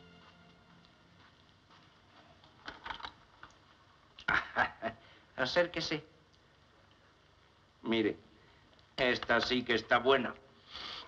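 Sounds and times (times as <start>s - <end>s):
soft footsteps on floor: 0.0s - 2.6s.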